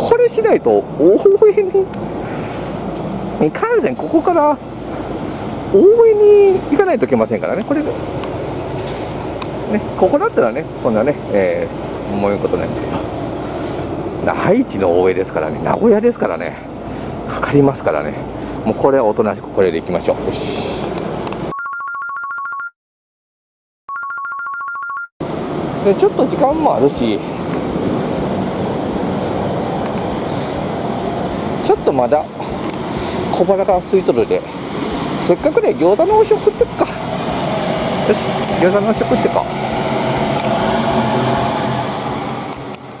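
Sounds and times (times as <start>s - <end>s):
street noise: 0.0s - 21.5s, 25.2s - 43.0s
warbling two-tone telephone ring: 21.5s - 22.7s, 23.9s - 25.1s.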